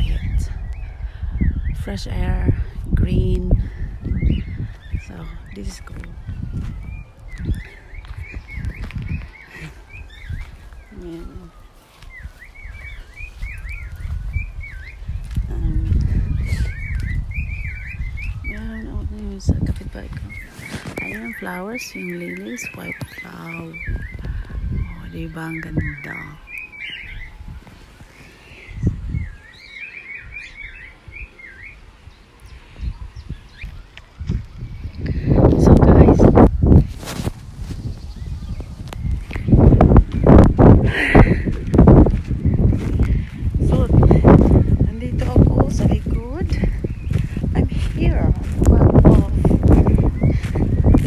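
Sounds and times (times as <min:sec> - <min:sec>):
songbird singing whistled notes: 0:00.0 - 0:02.4, 0:03.3 - 0:40.6, 0:41.4 - 0:51.0.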